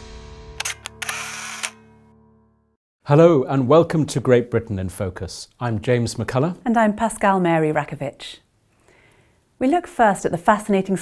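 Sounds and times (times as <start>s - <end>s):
camera shutter clicks: 0.6s - 1.9s.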